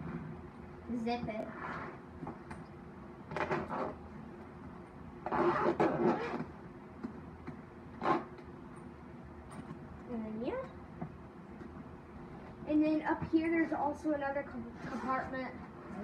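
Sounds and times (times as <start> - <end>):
zipper rasping: 1.4 - 2.1, 3.3 - 4.0, 5.2 - 6.5, 7.9 - 8.4, 14.8 - 16.0.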